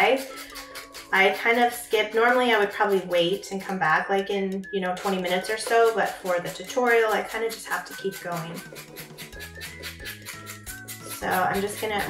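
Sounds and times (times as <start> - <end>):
background music with quick beat: 0.0 - 12.0.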